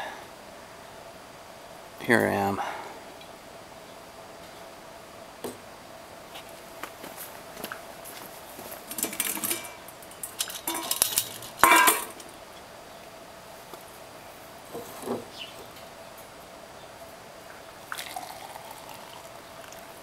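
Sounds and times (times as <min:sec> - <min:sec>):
metal pot lid clinks: 0:10.4 - 0:12.2
loud ringing metal clank: 0:11.6 - 0:12.2.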